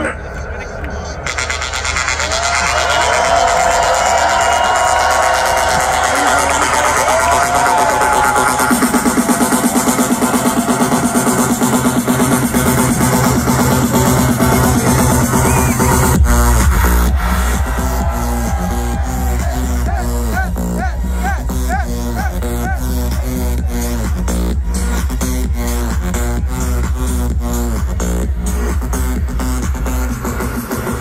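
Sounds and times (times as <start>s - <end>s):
electronic dance music: 1.0s - 31.0s.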